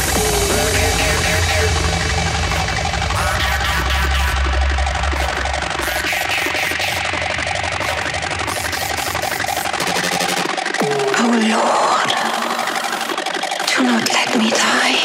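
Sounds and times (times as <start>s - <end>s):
drum and bass music: 0.0s - 15.0s.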